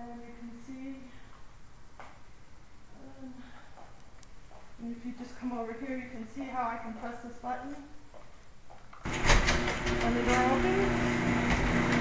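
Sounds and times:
garage door motor rumble: 0:09.0 - 0:12.0.

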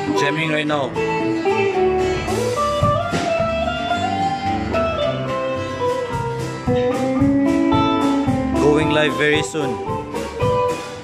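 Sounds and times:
acoustic guitar: 0:00.0 - 0:11.0
bass guitar: 0:00.0 - 0:11.0
electric lead guitar: 0:00.0 - 0:11.0
drum kit: 0:00.9 - 0:11.0.

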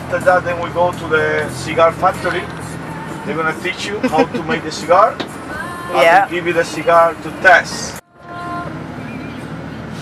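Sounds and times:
vehicle engine and tyre noise: 0:00.0 - 0:10.0.

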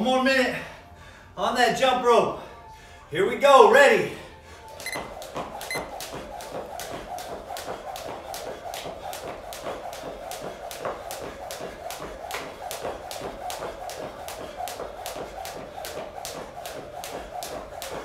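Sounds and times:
constant background hum: 0:04.2 - 0:18.0
jump rope slapping floor: 0:04.7 - 0:18.0.

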